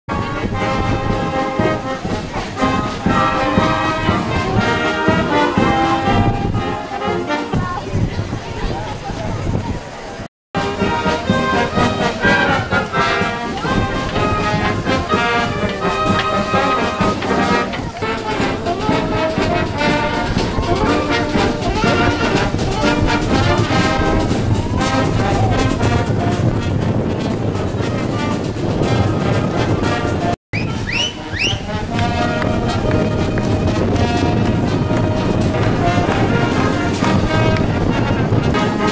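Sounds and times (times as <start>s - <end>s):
wind band with brass: 0.1s - 38.9s.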